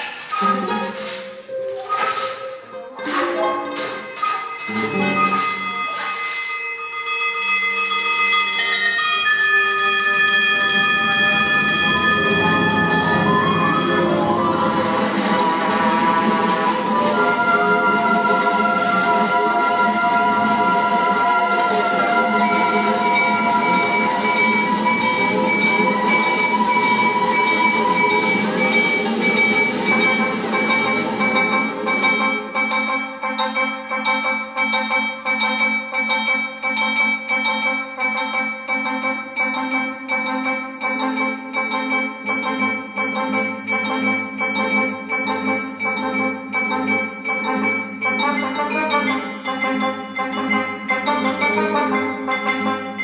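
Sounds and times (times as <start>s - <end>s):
chamber ensemble long held tones: 0.0s - 53.0s.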